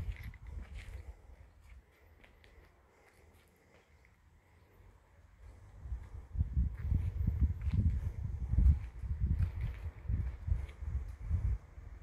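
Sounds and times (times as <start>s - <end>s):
footsteps on concrete: 0.0s - 4.8s, 5.4s - 11.2s.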